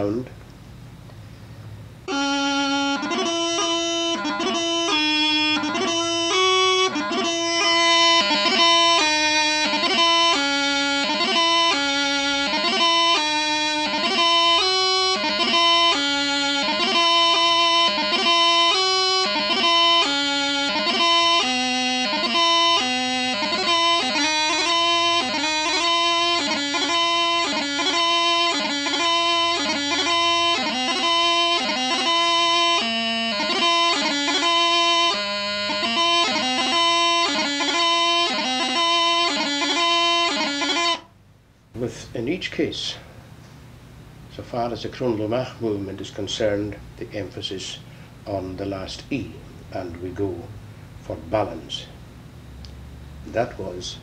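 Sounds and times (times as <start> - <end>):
bagpipe practice chanter: 2.0 - 41.1.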